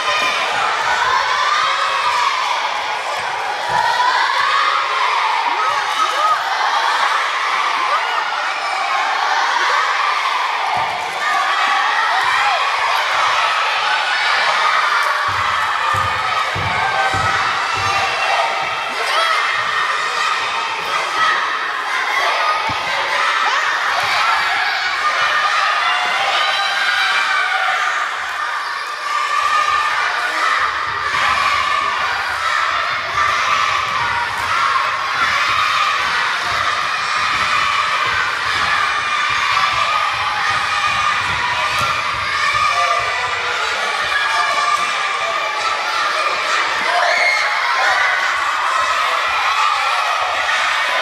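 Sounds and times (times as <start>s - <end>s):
children shouting and cheering: 0.0s - 51.0s.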